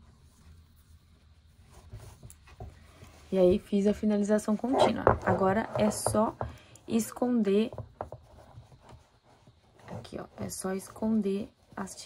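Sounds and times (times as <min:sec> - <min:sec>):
soft rustles and light knocks: 0:00.0 - 0:12.0.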